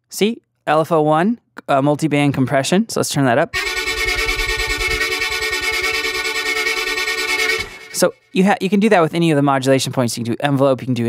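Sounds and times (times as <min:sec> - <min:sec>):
synthesizer chord with stutter: 0:03.6 - 0:08.3.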